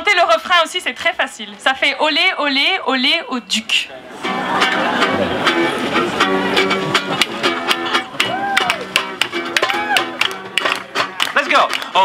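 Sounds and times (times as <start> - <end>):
acoustic guitar strumming: 4.1 - 11.3.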